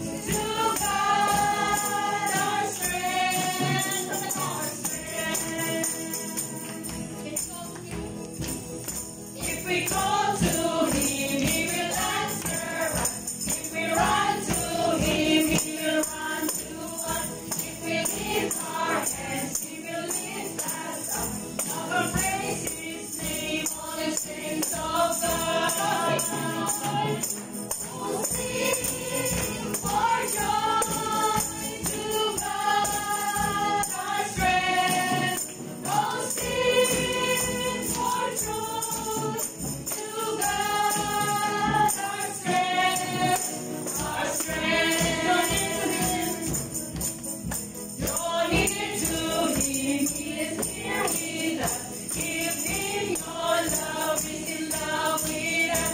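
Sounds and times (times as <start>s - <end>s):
musical accompaniment: 0.0s - 55.9s
tambourines jingling: 0.0s - 55.9s
voices singing worship song: 0.0s - 55.9s.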